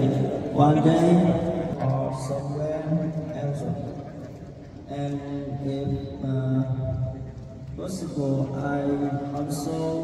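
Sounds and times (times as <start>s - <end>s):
man speaking over public address: 0.0s - 10.0s.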